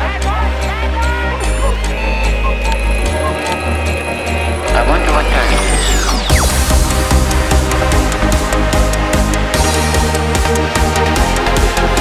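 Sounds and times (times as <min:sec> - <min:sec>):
deep bass: 0:00.0 - 0:12.0
held synth chords: 0:00.2 - 0:12.0
fast clicks: 0:01.6 - 0:04.7.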